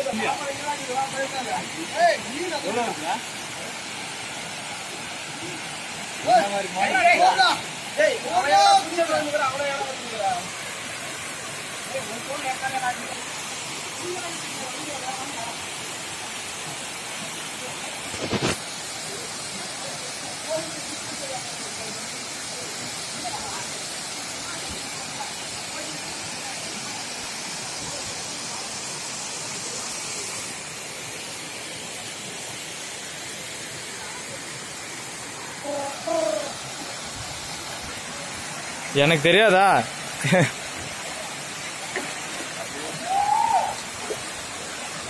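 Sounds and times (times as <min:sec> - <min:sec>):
waterfall rushing: 0:00.0 - 0:45.0
faint voices: 0:33.8 - 0:38.9.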